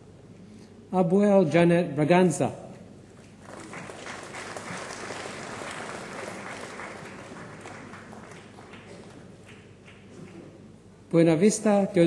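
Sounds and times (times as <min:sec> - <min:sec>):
audience applauding: 0:03.3 - 0:10.6.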